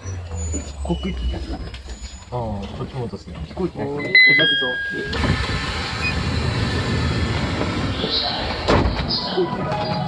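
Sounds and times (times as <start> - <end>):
descending electronic chime: 4.0 - 5.2.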